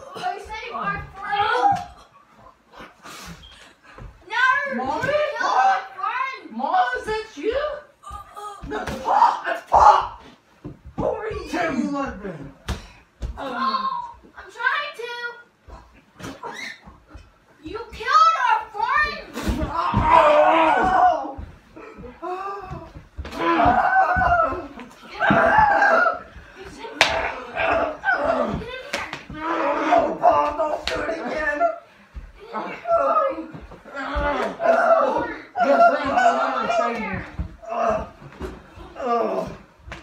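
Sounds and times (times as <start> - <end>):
voices: 17.6 - 39.7.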